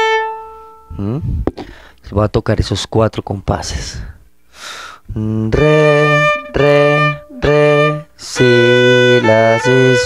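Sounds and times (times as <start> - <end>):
violin bowed note: 0.0 - 1.5, 5.5 - 10.0
person speaking: 0.9 - 4.2.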